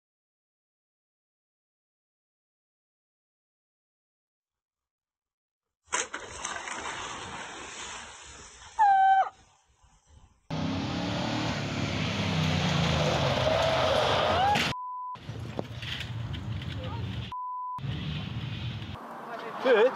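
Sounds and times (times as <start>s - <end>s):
water splashing in a pool: 5.9s - 9.4s
shrill cry: 8.8s - 9.4s
tires sliding on gravel: 10.5s - 19.9s.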